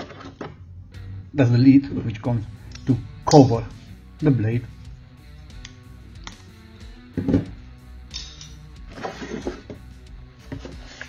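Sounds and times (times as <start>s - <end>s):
guitar music: 0.9s - 11.0s.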